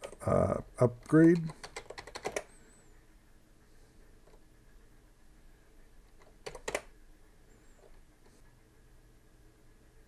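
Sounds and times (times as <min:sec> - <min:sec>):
keyboard key presses: 0:01.0 - 0:02.5, 0:06.2 - 0:06.9.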